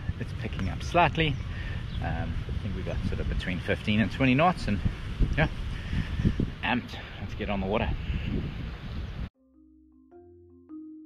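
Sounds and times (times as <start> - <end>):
wind buffeting microphone: 0.0 - 9.3
background music of held notes: 9.4 - 11.0.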